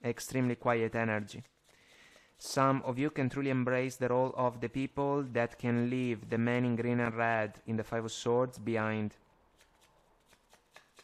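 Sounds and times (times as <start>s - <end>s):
cards rustling on a table: 1.3s - 2.4s, 9.6s - 11.0s.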